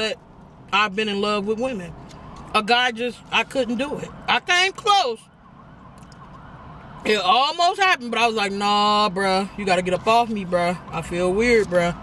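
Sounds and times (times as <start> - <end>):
people talking: 0.0 - 1.9, 2.6 - 5.2, 7.1 - 12.0
faint siren wailing: 2.1 - 12.0.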